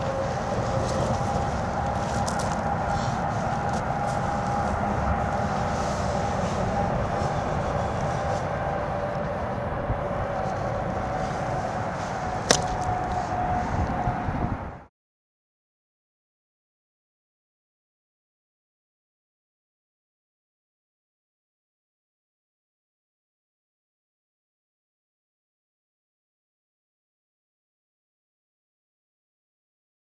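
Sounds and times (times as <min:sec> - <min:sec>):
constant hum: 0:00.0 - 0:14.9
road traffic rumble: 0:00.0 - 0:14.9.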